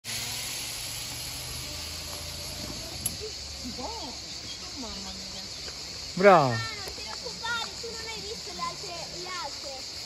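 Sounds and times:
insect chorus shrilling: 0:00.0 - 0:10.0.

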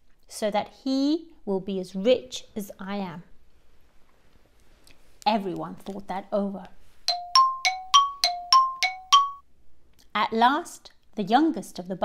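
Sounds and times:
bright chime jingle: 0:07.1 - 0:09.4.

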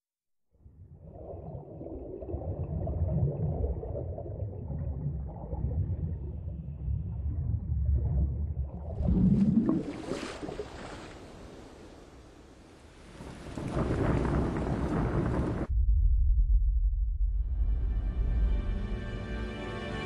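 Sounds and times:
deep rumble: 0:00.7 - 0:09.7, 0:13.8 - 0:19.3.

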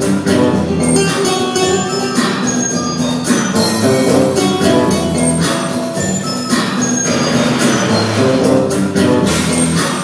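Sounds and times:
held guitar notes: 0:00.0 - 0:06.8
drum kit with cymbal strikes: 0:00.0 - 0:10.0.

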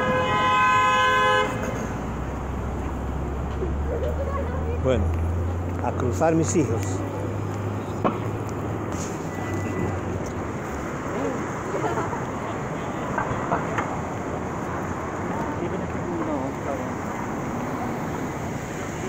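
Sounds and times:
car traffic: 0:00.0 - 0:19.0
passers-by talking: 0:00.8 - 0:19.0.

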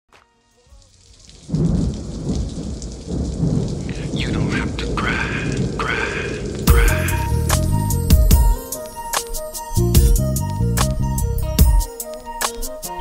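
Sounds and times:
steady rain: 0:00.1 - 0:13.0
thunder rumbling: 0:01.0 - 0:09.1.

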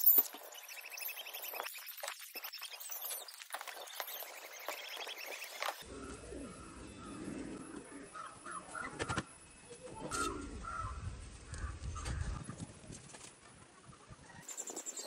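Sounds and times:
birds calling: 0:00.0 - 0:12.6.

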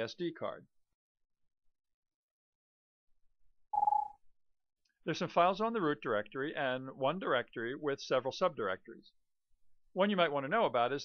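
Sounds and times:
brief beep tone: 0:03.8 - 0:04.2.

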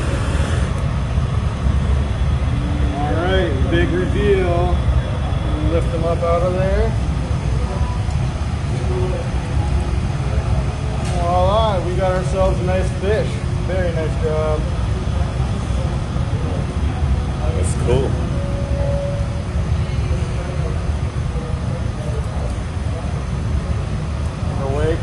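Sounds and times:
furnace burners and exhaust fans rumbling: 0:00.0 - 0:25.0.

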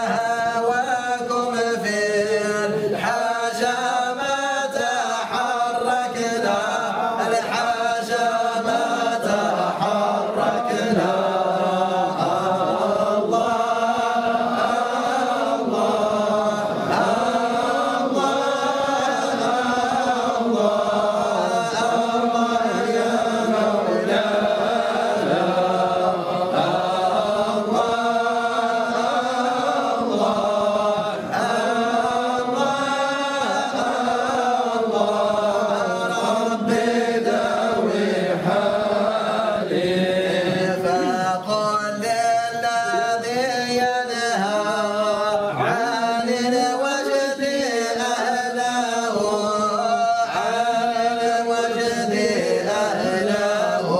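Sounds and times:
men singing a devotional chant: 0:00.0 - 0:53.9.

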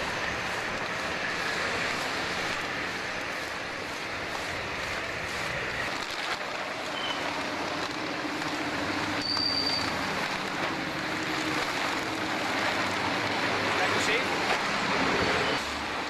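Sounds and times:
traffic rumbling over steel bridge: 0:00.0 - 0:16.0
high squeal: 0:09.2 - 0:09.9.

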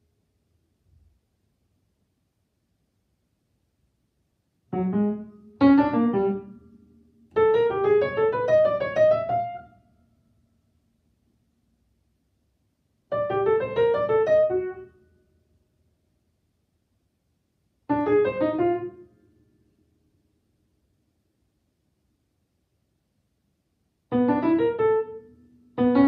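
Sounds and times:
upright piano notes: 0:04.7 - 0:06.6, 0:07.3 - 0:09.7, 0:13.1 - 0:14.9, 0:17.9 - 0:19.1, 0:24.1 - 0:26.0.

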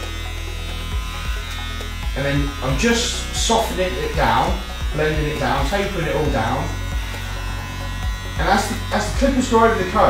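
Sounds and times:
electric hair clippers buzzing: 0:00.0 - 0:10.0.

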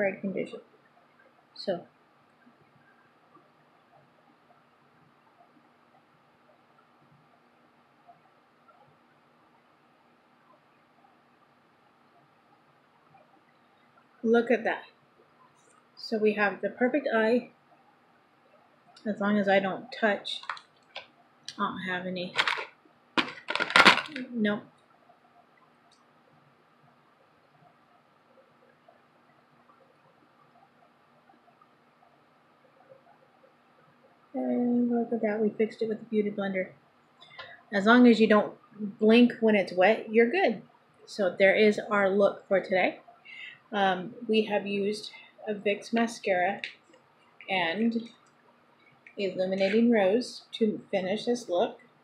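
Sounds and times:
faint steady hiss: 0:00.0 - 0:52.0
faint steady hum: 0:00.0 - 0:52.0.

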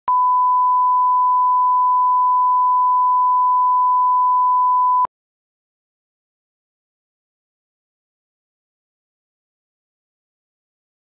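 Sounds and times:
steady reference tone beep: 0:00.1 - 0:05.1.

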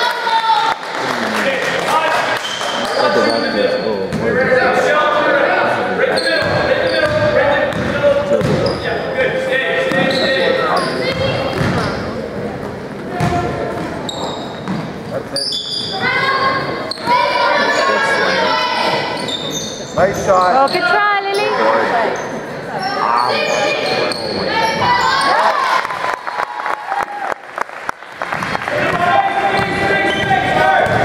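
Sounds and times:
basketball bouncing on wooden floor: 0:06.4 - 0:08.6, 0:11.1 - 0:11.8
voices calling out: 0:15.3 - 0:26.0.

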